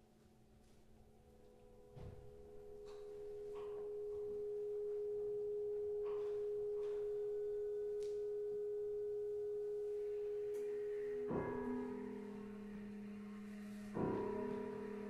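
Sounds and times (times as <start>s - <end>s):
ensemble holding a pure tone: 1.4s - 15.0s.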